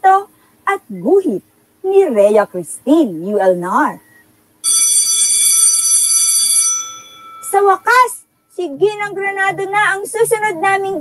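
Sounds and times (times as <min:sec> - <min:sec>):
school bell ringing: 0:04.6 - 0:08.1.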